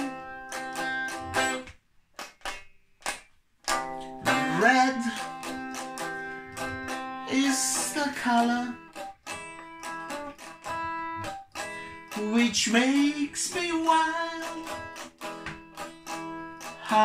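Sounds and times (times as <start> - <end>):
acoustic guitar chords: 0.0 - 1.7, 3.7 - 17.0.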